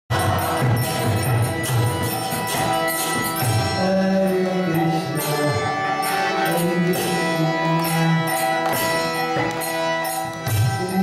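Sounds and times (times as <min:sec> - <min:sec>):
harmonium sustained chords: 0:00.1 - 0:11.0
struck percussion beats: 0:00.1 - 0:11.0.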